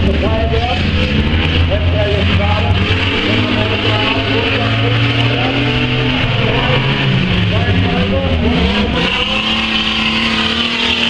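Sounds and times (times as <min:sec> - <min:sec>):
stockcar engines droning: 0:00.0 - 0:11.0.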